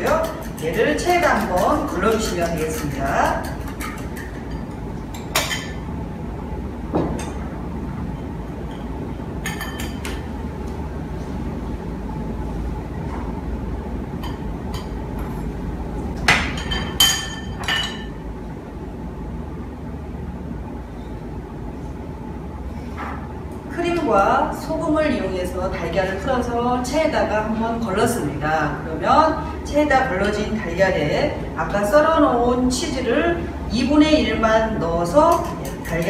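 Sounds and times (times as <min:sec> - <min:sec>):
low background hum: 0:00.0 - 0:36.0.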